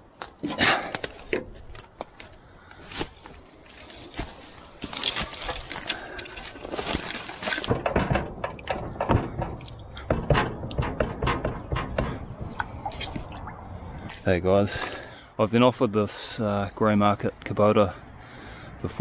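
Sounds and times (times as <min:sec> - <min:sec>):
twigs crackling and snapping: 0:00.1 - 0:09.0.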